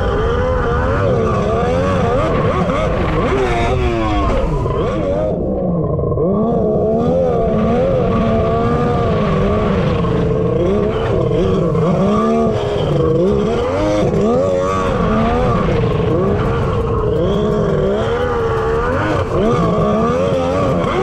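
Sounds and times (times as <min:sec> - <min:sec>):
jet ski engine revving: 0:00.0 - 0:21.0.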